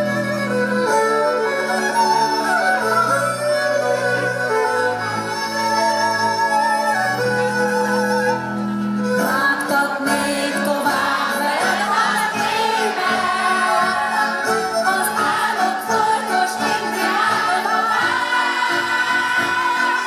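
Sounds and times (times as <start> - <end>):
double bass: 0.0 - 11.1
accordion: 0.0 - 20.0
fiddles: 0.0 - 20.0
woman singing: 9.2 - 20.0.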